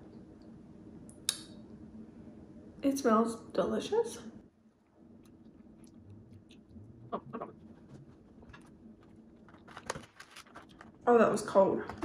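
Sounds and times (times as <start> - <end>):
chewing and mouth clicks: 5.1 - 8.0
mouth smacks: 5.2 - 7.8.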